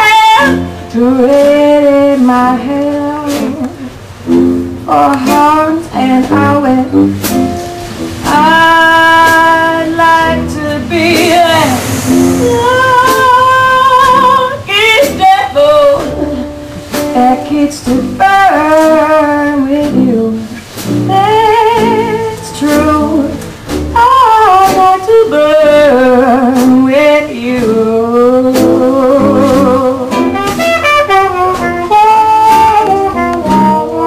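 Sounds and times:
small jazz band: 0.0 - 34.0
woman singing jazz: 0.0 - 34.0
sousaphone bass: 4.2 - 18.3.

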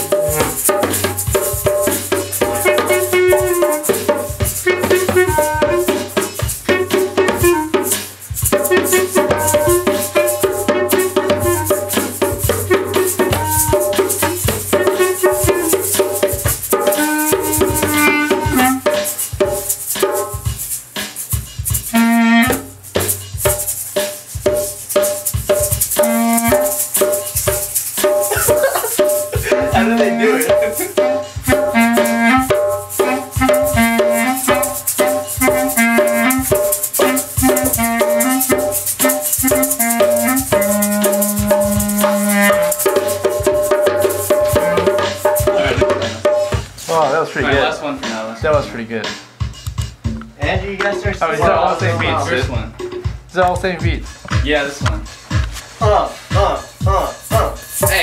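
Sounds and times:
clarinet melody: 0.0 - 19.8, 21.8 - 23.8, 25.6 - 46.1
shakers rattling: 0.0 - 46.8, 56.8 - 58.0
djembe struck by hand: 0.0 - 58.0.

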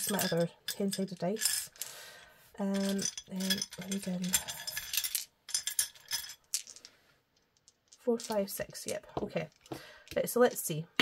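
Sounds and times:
plastic dice clattering: 2.8 - 10.6.

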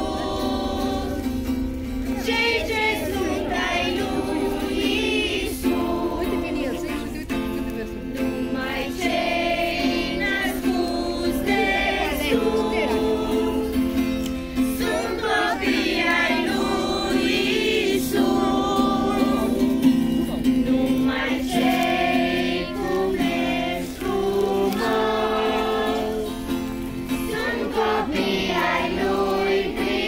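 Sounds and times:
children singing together: 0.0 - 7.2, 8.4 - 30.0
acoustic guitar: 0.0 - 30.0.

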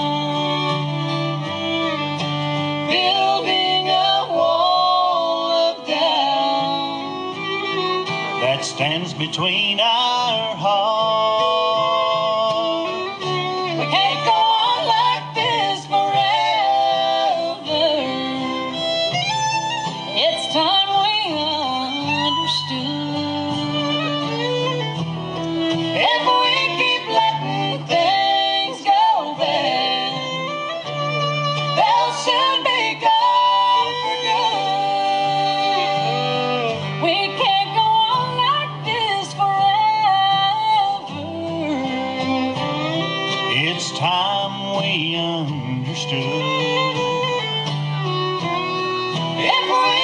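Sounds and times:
acoustic guitar: 0.0 - 50.0
bluegrass band playing: 0.0 - 50.0
fiddle melody with sliding notes: 0.0 - 50.0
mandolin: 0.0 - 50.0.

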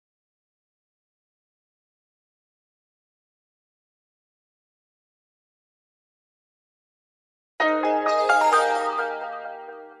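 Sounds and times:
musical logo sting: 7.6 - 10.0.

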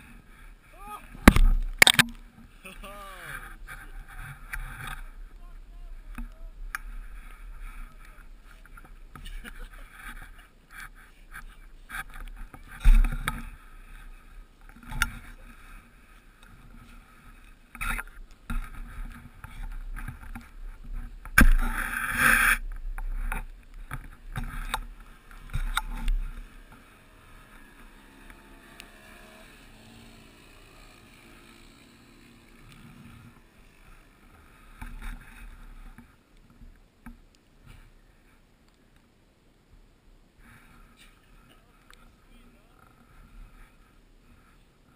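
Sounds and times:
camera handling rustling and scraping: 1.3 - 2.2.

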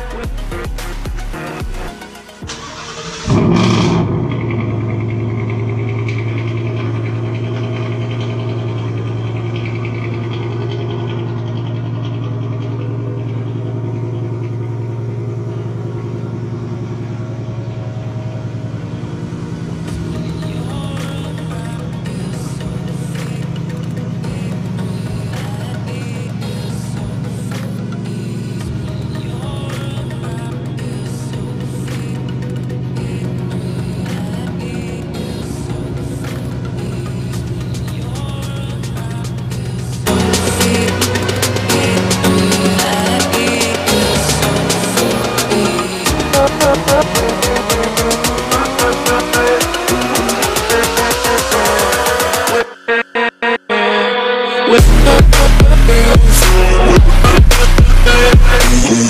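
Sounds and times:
car engine starting and idling: 0.0 - 59.0.

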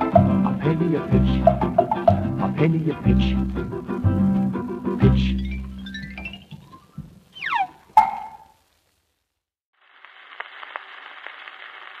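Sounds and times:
jazz band recording: 0.0 - 8.5
record surface hiss and clicks: 1.4 - 12.0.

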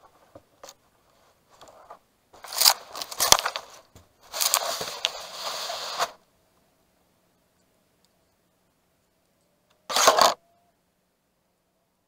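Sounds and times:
leaves and twigs scraping camera: 1.6 - 6.2, 9.9 - 10.4.

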